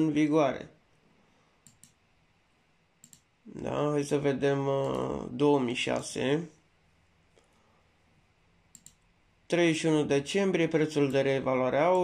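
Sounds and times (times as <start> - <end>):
faint computer clicks: 1.6 - 2.0, 3.0 - 3.3, 8.7 - 9.0.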